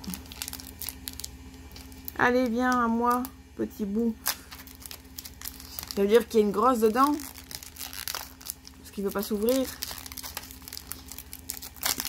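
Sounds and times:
foil wrapper crinkling: 0.0s - 3.3s, 4.1s - 12.0s.

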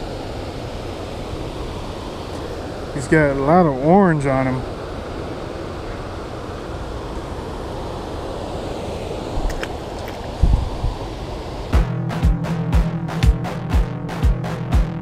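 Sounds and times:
stream water flowing: 0.0s - 11.8s
wind on microphone: 4.6s - 11.8s
electronic music with thumping beat: 11.7s - 15.0s.

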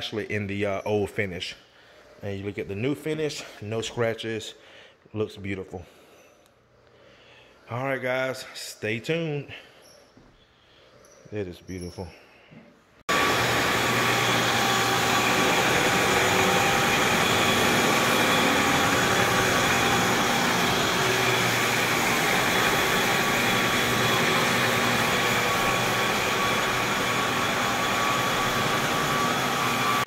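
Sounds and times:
floor buffer motor humming: 13.1s - 30.0s.

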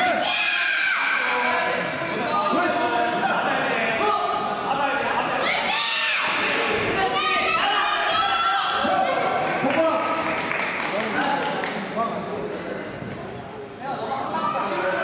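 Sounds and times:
people shouting in echoing hall: 0.0s - 3.2s, 3.8s - 9.9s.

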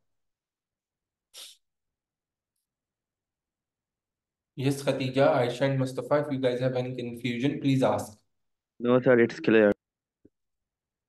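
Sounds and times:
person sniffing or exhaling: 1.3s - 1.6s.

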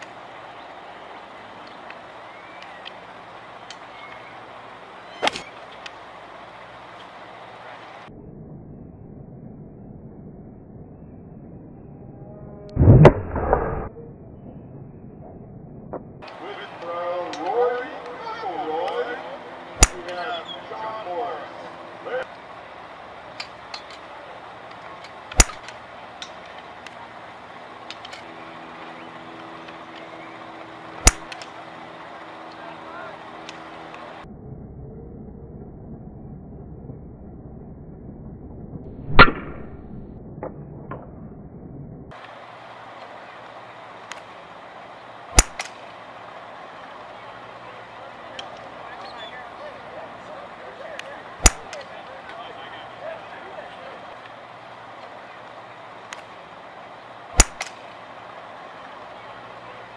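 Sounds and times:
golf club striking ball: 19.8s - 20.1s, 25.3s - 25.7s, 31.0s - 31.5s, 45.3s - 45.8s, 51.4s - 51.8s, 57.4s - 57.8s
background chatter: 45.9s - 59.9s.

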